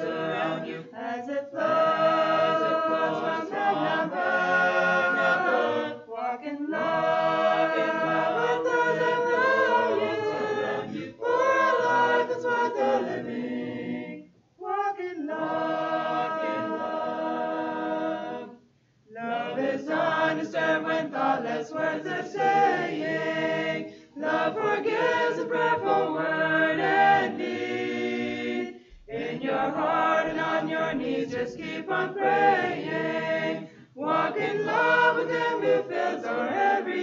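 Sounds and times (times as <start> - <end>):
mixed choir singing a cappella: 0.0 - 37.0.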